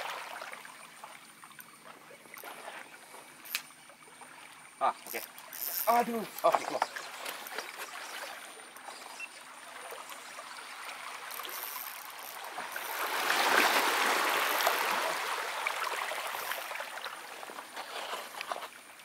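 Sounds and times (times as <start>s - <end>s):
waves washing over rocks: 12.0s - 17.8s.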